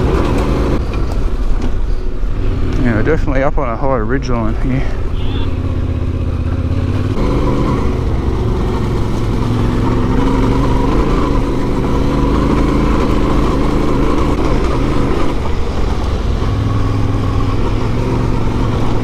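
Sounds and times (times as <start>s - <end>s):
motorcycle engine running: 0.0s - 0.9s, 5.0s - 19.0s.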